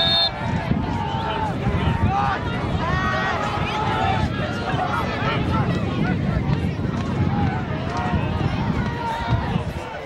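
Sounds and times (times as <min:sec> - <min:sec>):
referee's whistle blast: 0:00.0 - 0:00.4
people calling and shouting: 0:00.0 - 0:10.0.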